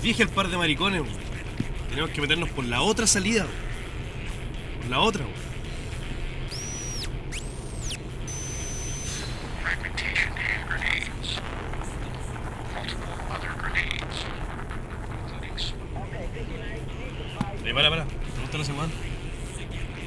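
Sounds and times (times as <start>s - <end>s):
car engine drone and road noise: 0.0s - 20.0s
high whistling glides: 6.5s - 9.5s
short high steady tone: 6.5s - 9.6s.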